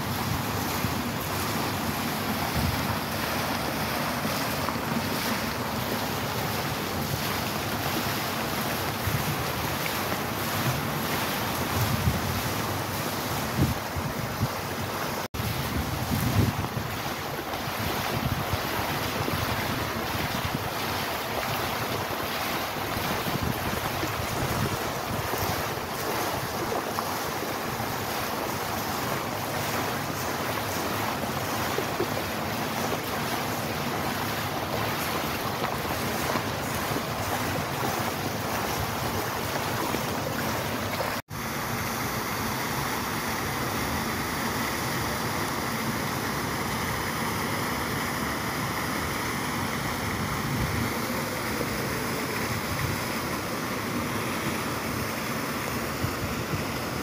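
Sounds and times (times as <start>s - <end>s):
wind buffeting microphone: 0.0s - 41.2s
fountain water splashing: 0.0s - 57.0s.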